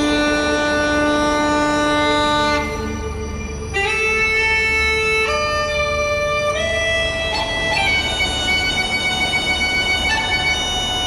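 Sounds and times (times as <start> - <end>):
bagpipes holding a note: 0.0 - 11.0.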